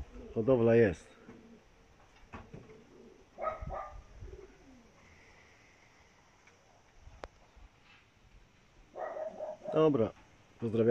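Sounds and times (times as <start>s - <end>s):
pigeons cooing: 0.0s - 0.4s, 1.1s - 5.6s, 9.0s - 10.0s.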